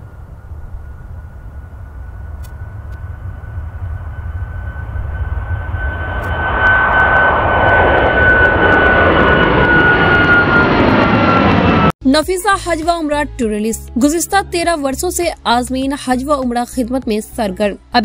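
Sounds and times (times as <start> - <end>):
jet taking off: 0.0 - 12.0.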